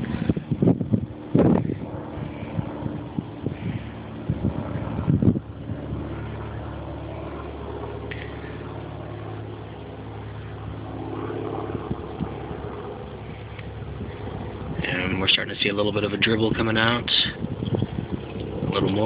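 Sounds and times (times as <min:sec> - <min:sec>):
low mechanical hum: 0:00.0 - 0:19.0.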